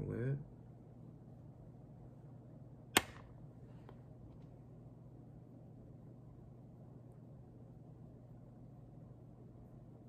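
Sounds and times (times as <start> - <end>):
ceiling fan humming: 0.0 - 10.0.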